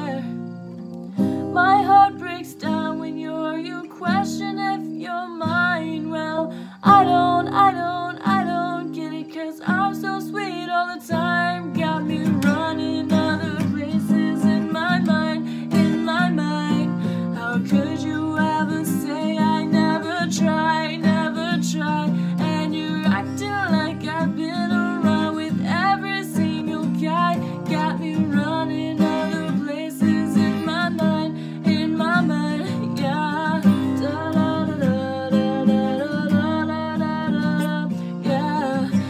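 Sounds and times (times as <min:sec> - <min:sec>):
woman singing: 0:00.0 - 0:00.6, 0:01.2 - 0:39.0
strummed acoustic guitar: 0:00.0 - 0:39.0.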